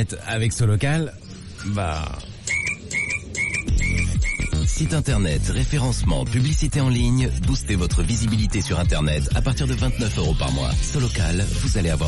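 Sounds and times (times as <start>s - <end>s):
electronic frog chime croaking: 2.4s - 5.0s.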